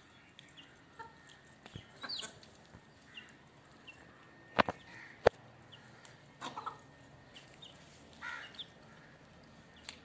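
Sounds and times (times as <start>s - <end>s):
chick peeping: 0.4s - 2.6s, 3.2s - 7.9s
hens clucking: 6.0s - 7.6s.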